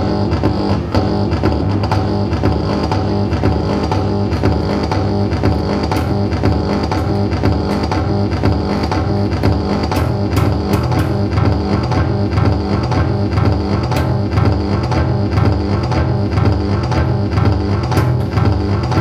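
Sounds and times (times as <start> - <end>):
electric bass guitar with delay: 0.0 - 19.0.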